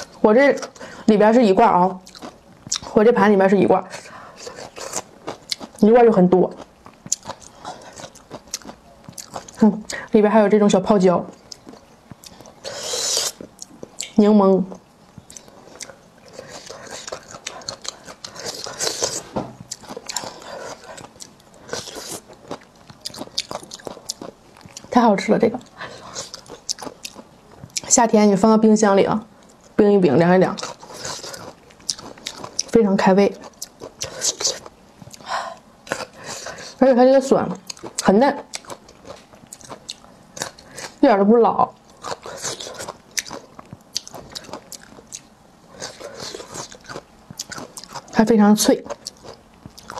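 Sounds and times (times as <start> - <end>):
wet crunching of chewing: 1.7 - 3.0, 3.9 - 10.1, 15.1 - 27.9, 30.5 - 36.8, 37.6 - 41.0, 41.7 - 49.9.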